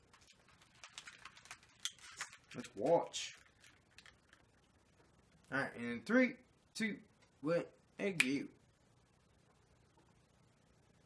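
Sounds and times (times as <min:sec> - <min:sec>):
headphones rustling and clicking: 0:00.0 - 0:04.5.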